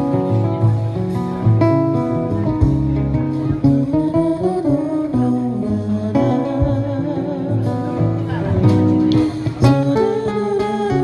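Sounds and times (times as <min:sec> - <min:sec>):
guitars strumming chords: 0:00.0 - 0:11.0
low bass notes: 0:00.0 - 0:11.0.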